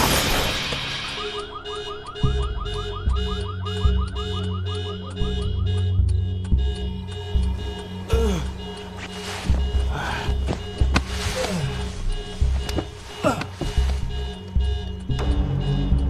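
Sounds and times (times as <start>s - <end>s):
car crash: 0.0s - 1.2s
dramatic music with bass hits: 0.0s - 16.0s
car alarm warbling: 0.6s - 16.0s.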